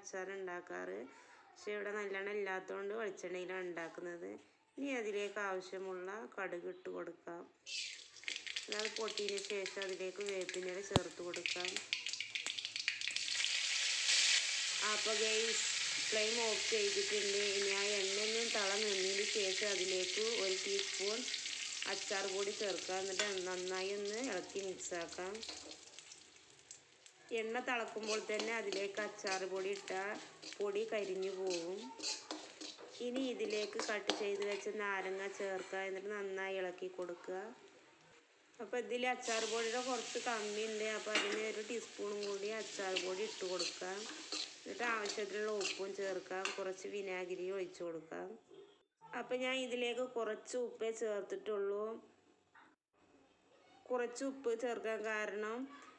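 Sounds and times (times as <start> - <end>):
woman talking: 0.0 - 7.5, 8.7 - 11.8, 14.8 - 21.3, 21.9 - 25.5, 27.3 - 32.2, 33.0 - 37.6, 38.6 - 48.4
hot oil sizzling in a wok: 7.7 - 34.7, 39.2 - 46.9
person speaking: 27.3 - 36.1, 39.2 - 46.9.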